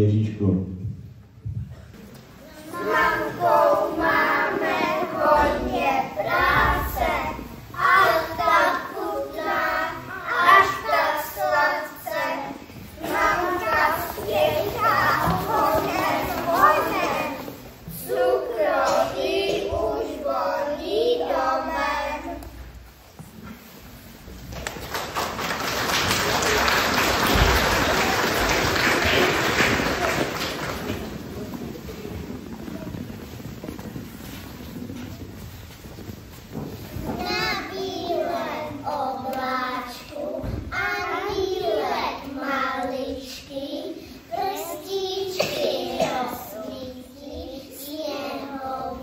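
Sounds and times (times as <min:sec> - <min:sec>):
children reciting in unison: 0:01.8 - 0:22.7, 0:36.5 - 0:49.0.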